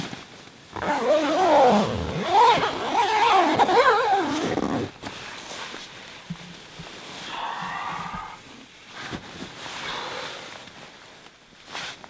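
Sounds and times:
wavering animal-like howl: 7.3s - 8.5s.

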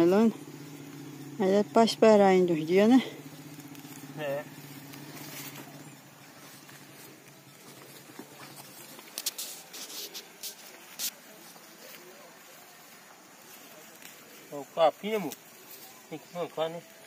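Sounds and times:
low engine hum: 0.0s - 9.7s
plant stems rustling and snapping: 3.4s - 5.8s, 6.4s - 12.0s, 13.4s - 15.8s.

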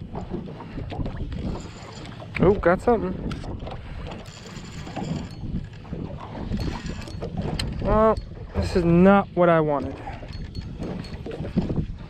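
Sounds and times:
fishing reel rattling: 4.2s - 5.9s, 6.5s - 7.9s.

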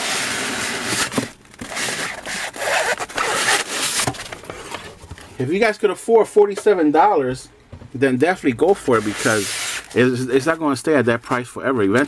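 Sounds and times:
polystyrene foam scraping: 0.0s - 4.7s, 8.8s - 10.3s.

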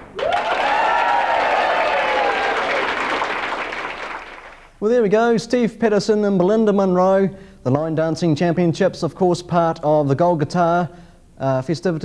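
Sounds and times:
audience applauding: 0.0s - 4.7s.

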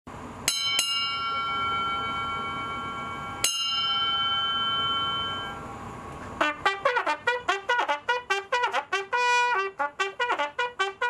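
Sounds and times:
steady background noise: 0.1s - 11.0s
ship's bell ringing: 0.4s - 6.1s.

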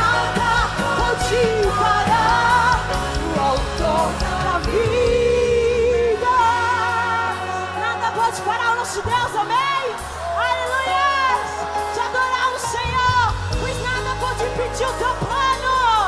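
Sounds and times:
band music: 0.0s - 16.0s
woman singing into a microphone: 0.0s - 16.0s.

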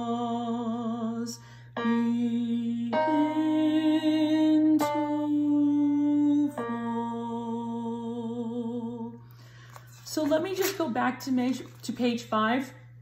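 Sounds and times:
woman singing with vibrato: 0.0s - 9.3s.

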